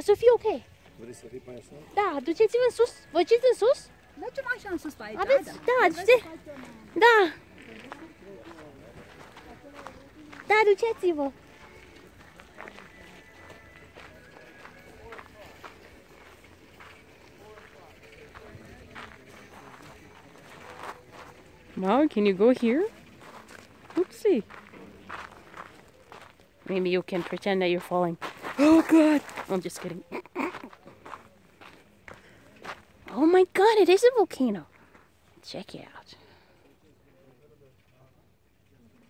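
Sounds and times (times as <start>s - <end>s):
faint voices: 0.0s - 27.0s
footsteps crunching on gravel: 4.0s - 33.4s.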